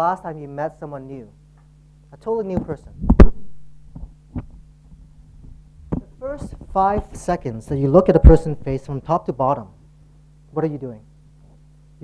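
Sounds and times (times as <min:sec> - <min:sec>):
low electrical hum: 0:00.0 - 0:12.0
microphone handling thumps: 0:02.5 - 0:09.1.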